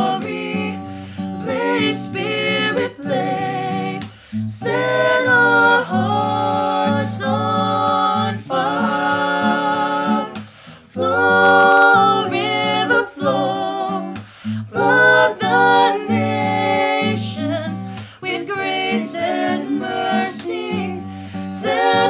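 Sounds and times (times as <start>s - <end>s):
acoustic guitar: 0.0s - 22.0s
voices singing in harmony: 0.0s - 22.0s.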